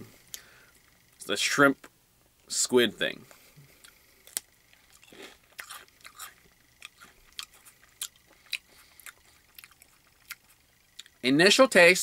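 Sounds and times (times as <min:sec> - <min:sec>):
person chewing crunchy cracker: 0:03.8 - 0:11.2.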